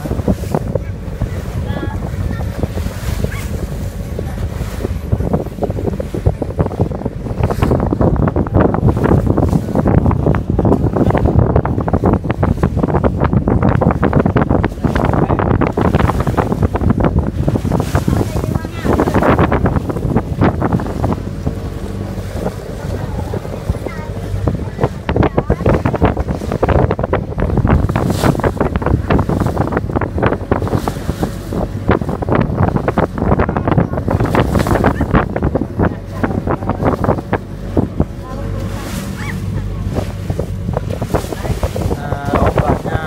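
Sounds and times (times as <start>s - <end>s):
boat engine drone: 0.0s - 43.0s
water splashing along hull: 0.0s - 43.0s
wind buffeting microphone: 0.0s - 43.0s.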